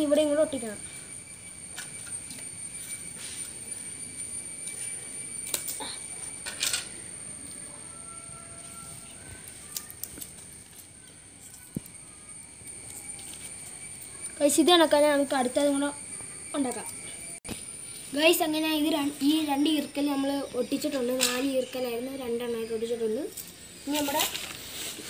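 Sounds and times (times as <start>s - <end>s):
insect drone: 0.0s - 25.0s.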